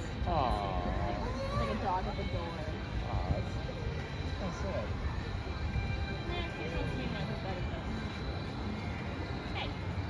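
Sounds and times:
faint distant voices: 0.0s - 10.0s
low outdoor rumble: 0.0s - 10.0s.

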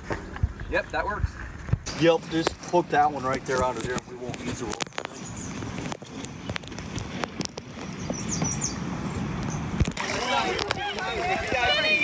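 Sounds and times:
people talking: 1.9s - 5.3s, 10.0s - 12.0s.

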